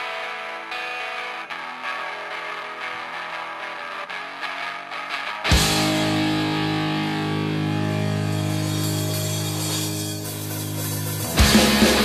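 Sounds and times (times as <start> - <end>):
distorted electric guitar chord: 0.0 - 12.0.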